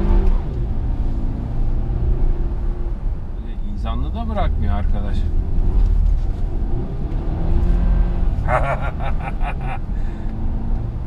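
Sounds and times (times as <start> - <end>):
car engine and road rumble: 0.0 - 11.0
man laughing: 8.4 - 9.9.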